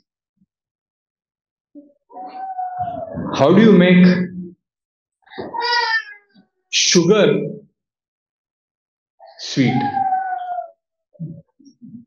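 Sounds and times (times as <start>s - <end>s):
man speaking: 3.3s - 4.5s, 6.8s - 7.6s, 9.4s - 10.0s.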